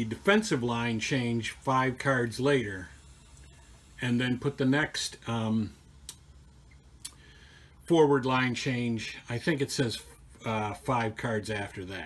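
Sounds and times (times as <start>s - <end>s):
man speaking: 0.0s - 3.0s, 4.0s - 5.9s, 7.8s - 12.0s.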